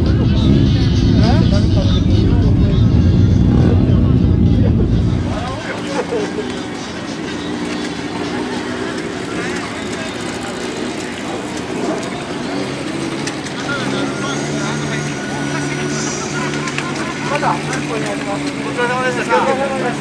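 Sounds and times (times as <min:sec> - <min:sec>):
low strong engine note: 0:00.0 - 0:20.0
motorcycle engines idling: 0:00.0 - 0:20.0
voices chatting: 0:00.0 - 0:20.0.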